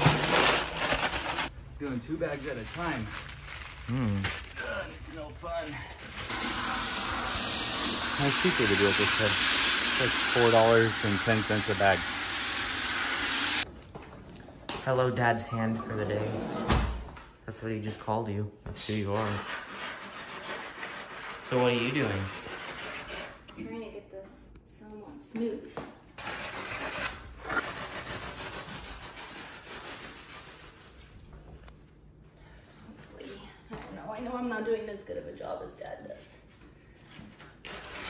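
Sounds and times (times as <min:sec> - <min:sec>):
hose water into plastic bucket: 0:06.3 - 0:13.6.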